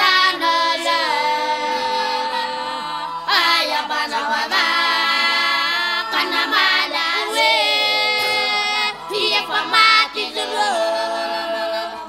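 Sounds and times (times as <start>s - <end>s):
boys singing a cappella: 0.0s - 12.0s.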